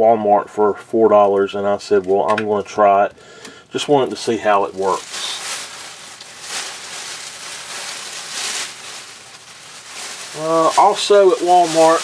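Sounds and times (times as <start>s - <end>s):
plastic bag rustling and crinkling: 3.8s - 12.0s.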